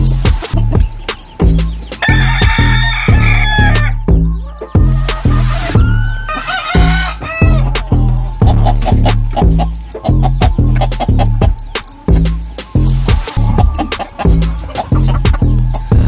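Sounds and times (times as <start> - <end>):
music with heavy bass beat: 0.0 - 16.0
rooster crowing: 2.0 - 8.2.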